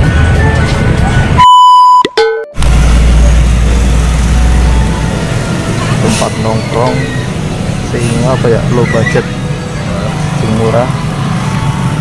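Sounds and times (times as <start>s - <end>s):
high beep: 1.4s - 2.6s.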